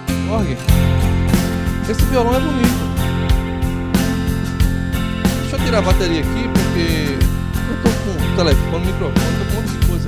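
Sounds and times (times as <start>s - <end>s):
keyboard accompaniment with guitar and drums: 0.0s - 10.0s.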